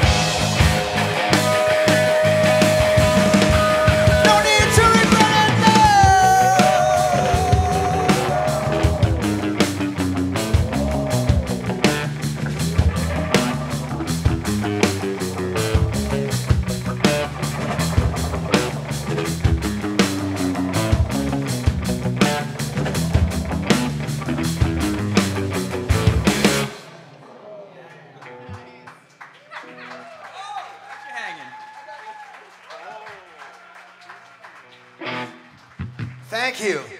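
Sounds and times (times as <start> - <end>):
drum kit with cymbals: 0.0 - 26.9
sliding lead guitar line: 0.0 - 26.9, 35.0 - 36.0
electric guitars: 0.0 - 27.1, 34.6 - 36.3.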